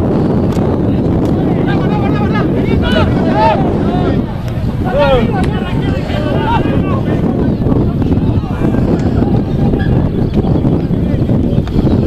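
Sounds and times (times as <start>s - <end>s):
wind buffeting microphone: 0.0s - 12.0s
voices shouting and calling: 0.4s - 12.0s.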